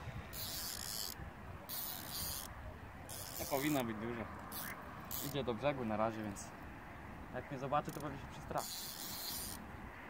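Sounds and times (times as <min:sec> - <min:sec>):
fishing reel ratcheting: 0:00.3 - 0:02.5, 0:03.1 - 0:03.8, 0:04.5 - 0:05.5, 0:07.8 - 0:09.6.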